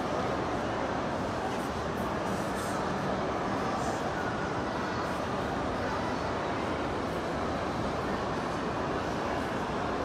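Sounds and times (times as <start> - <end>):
echoing crowd hubbub: 0.0 - 10.0.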